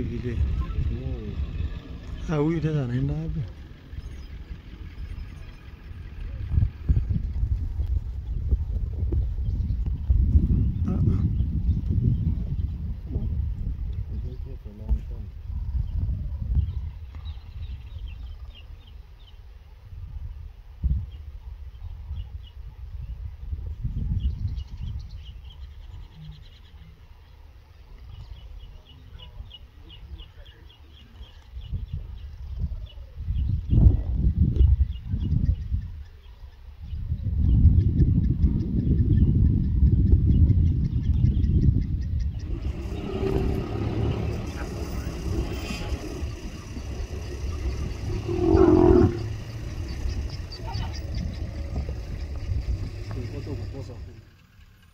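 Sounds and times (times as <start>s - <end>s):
lions growling: 42.4s - 53.9s.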